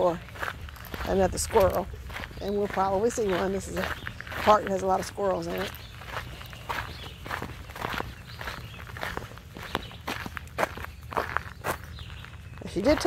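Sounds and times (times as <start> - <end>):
steady low rumble: 0.0 - 9.6
footsteps on asphalt: 0.0 - 13.0.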